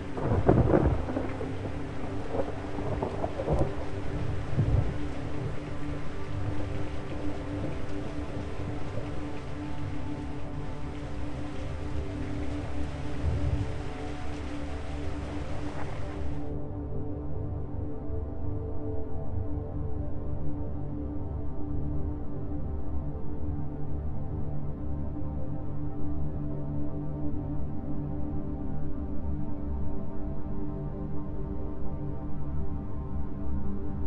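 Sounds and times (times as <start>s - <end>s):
thunder rumbling: 0.0s - 9.2s, 12.4s - 16.4s
steady rain: 0.0s - 16.6s
droning music tone: 0.0s - 34.0s.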